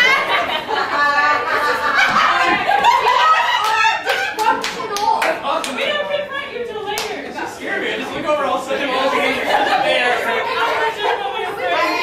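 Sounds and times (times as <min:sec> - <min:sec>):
people talking: 0:00.0 - 0:12.0
scattered hand claps: 0:03.6 - 0:05.8.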